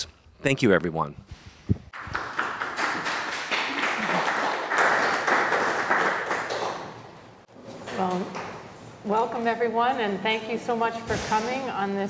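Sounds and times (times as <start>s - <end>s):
audience applauding: 2.0s - 7.2s.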